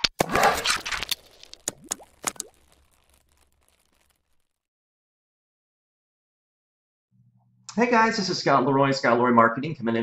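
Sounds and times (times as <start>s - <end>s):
quick pops rising in pitch: 1.6s - 4.1s.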